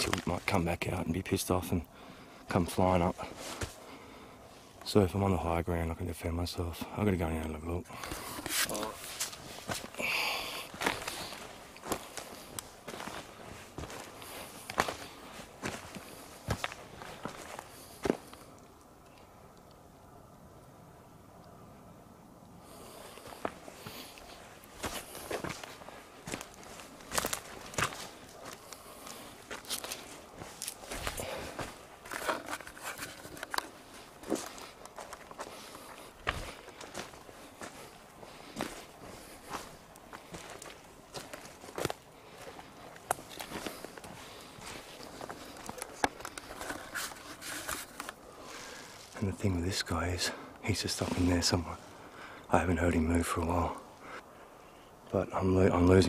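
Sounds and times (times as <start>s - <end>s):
footsteps on leaf litter: 10.7s - 18.4s, 23.4s - 50.0s.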